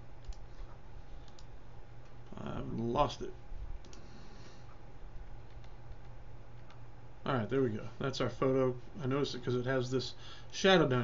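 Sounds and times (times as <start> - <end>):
low steady hum: 0.0 - 11.0
computer clicks: 0.2 - 2.9, 3.8 - 4.1, 5.4 - 6.8.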